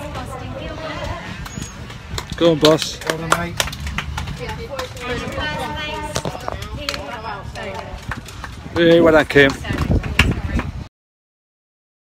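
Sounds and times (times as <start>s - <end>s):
murmur of voices: 0.0s - 10.9s.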